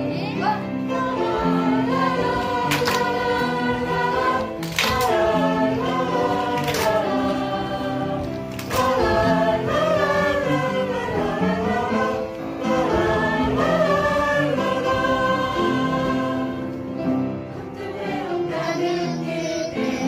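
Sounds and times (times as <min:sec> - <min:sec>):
choir singing la la la: 0:00.0 - 0:20.0
musical accompaniment: 0:00.0 - 0:20.0.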